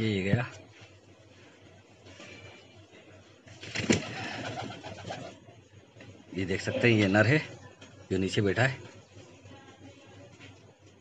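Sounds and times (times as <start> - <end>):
pigeon wings flapping: 3.5 - 5.4
pigeon wing clap: 3.6 - 5.4.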